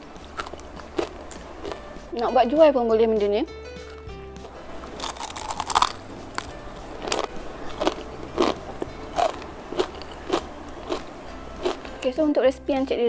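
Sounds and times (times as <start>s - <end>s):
crispy crepe crunching: 4.8s - 11.9s.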